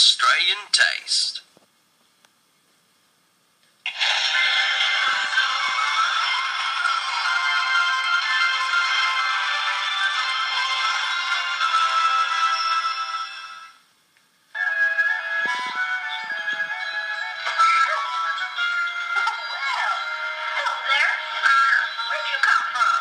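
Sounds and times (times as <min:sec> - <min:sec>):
electronic ringtone-like music: 0:03.9 - 0:13.8, 0:14.6 - 0:22.2.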